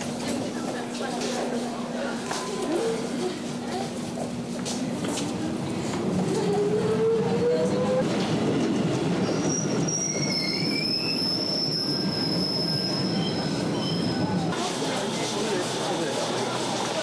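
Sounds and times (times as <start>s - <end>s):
wheel and brake squeal: 9.2s - 14.3s.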